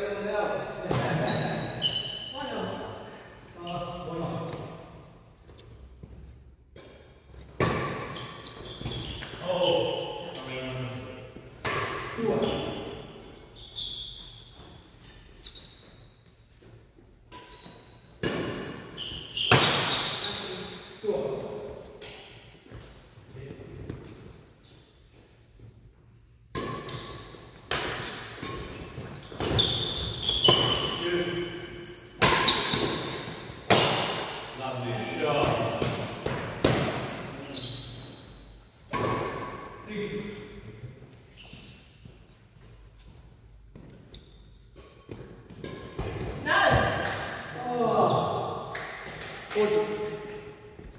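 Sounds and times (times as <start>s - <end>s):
shoes squeaking on wooden floor: 8.0s - 10.0s, 12.3s - 16.6s, 28.0s - 33.3s, 41.3s - 47.3s.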